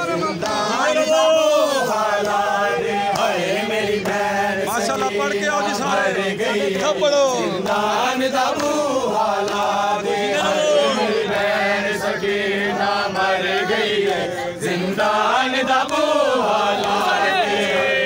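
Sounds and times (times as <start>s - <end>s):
men chanting together: 0.0s - 18.0s.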